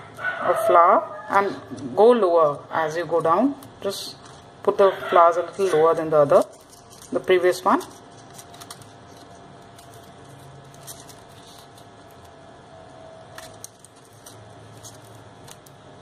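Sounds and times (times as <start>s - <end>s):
faint steady hum: 0.0s - 16.0s
paper and wire rustling: 3.1s - 12.4s, 13.3s - 15.8s.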